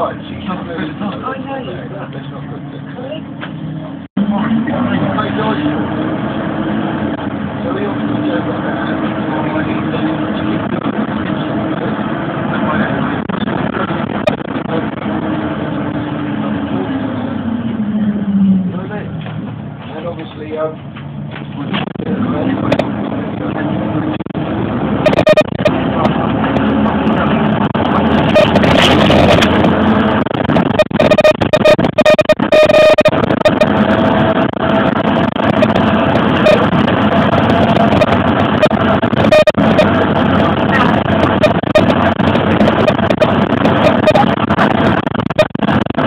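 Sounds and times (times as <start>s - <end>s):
bus engine running: 0.0s - 46.0s
bus body knocking and rattling: 19.0s - 25.0s.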